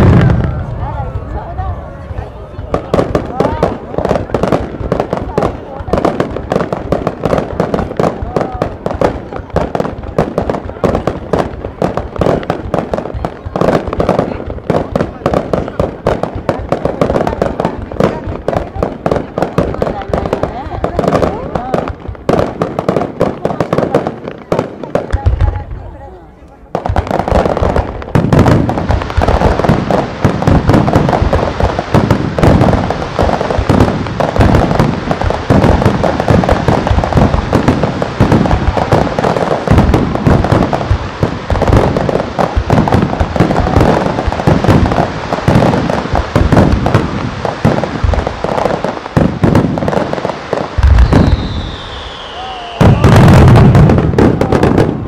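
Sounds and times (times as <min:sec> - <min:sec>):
fireworks bursting and crackling: 0:00.0 - 0:55.0
falling firework whistle: 0:50.8 - 0:53.8.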